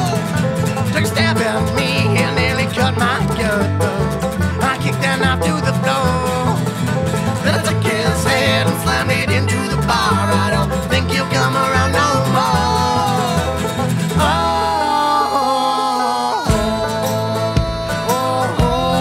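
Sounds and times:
men singing: 0:00.0 - 0:06.7, 0:07.3 - 0:19.0
bluegrass band playing: 0:00.0 - 0:19.0.

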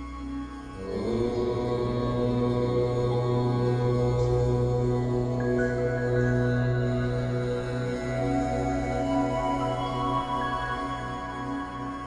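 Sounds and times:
ambient new-age music: 0:00.0 - 0:12.0
deep voice chanting: 0:00.7 - 0:09.9.

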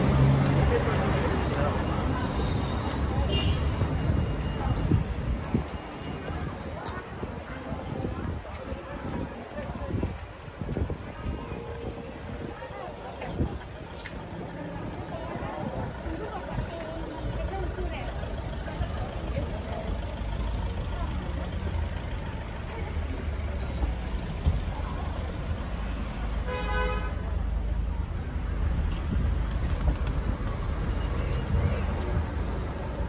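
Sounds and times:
passersby talking: 0:00.0 - 0:33.0
road traffic rumble: 0:00.0 - 0:33.0
car horn: 0:03.2 - 0:03.8, 0:26.4 - 0:27.2.

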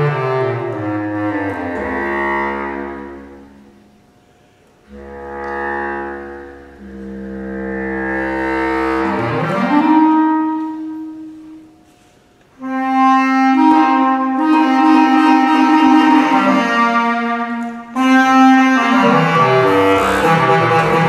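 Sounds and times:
bass clarinet playing: 0:00.0 - 0:04.0, 0:04.9 - 0:11.8, 0:12.6 - 0:21.0.

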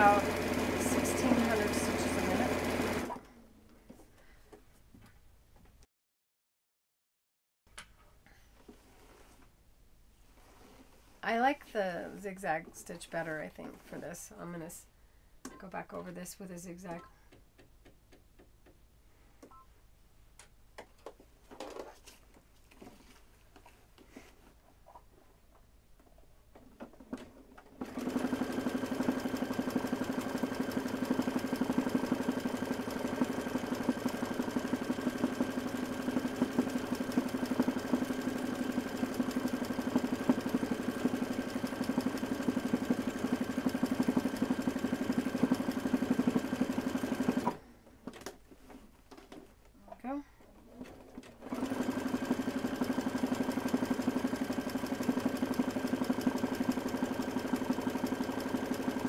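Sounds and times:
sewing machine running: 0:00.0 - 0:03.3, 0:27.8 - 0:47.6, 0:50.8 - 0:59.0.

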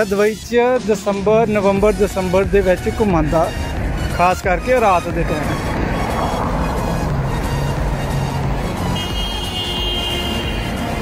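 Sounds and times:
cars driving: 0:00.0 - 0:11.0
music playing: 0:00.0 - 0:11.0
car passing close by: 0:05.2 - 0:09.0.

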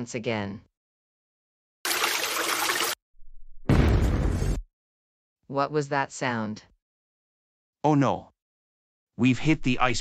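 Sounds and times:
deep explosion: 0:03.6 - 0:04.6
noisy crash: 0:03.6 - 0:04.6.

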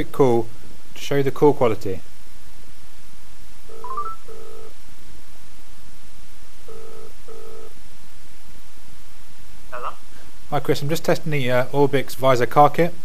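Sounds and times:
telephone ringback tone: 0:03.7 - 0:04.7, 0:06.7 - 0:07.7.

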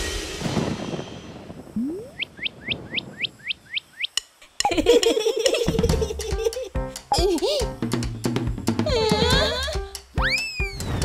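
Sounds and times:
cartoon rising tone: 0:01.8 - 0:02.2
high falling cartoon chirps: 0:01.8 - 0:04.8, 0:10.2 - 0:11.0.

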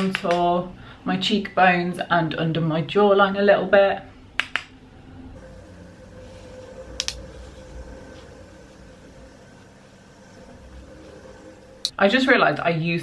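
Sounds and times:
steady low hum: 0:04.0 - 0:12.7.

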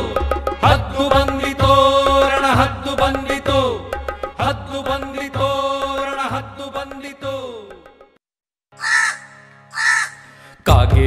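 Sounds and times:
crow cawing: 0:08.8 - 0:10.6.

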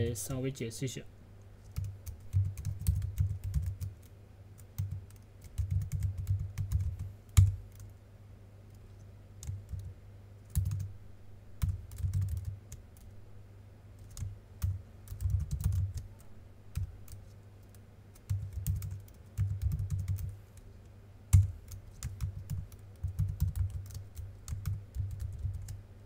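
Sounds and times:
computer keyboard typing: 0:01.7 - 0:07.9, 0:09.4 - 0:09.9, 0:10.5 - 0:10.9, 0:11.6 - 0:13.1, 0:14.0 - 0:20.3, 0:21.3 - 0:25.8.

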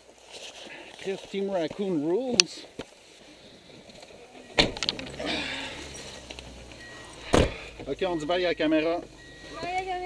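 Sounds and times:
car door slamming: 0:04.5 - 0:05.6, 0:07.0 - 0:08.0.

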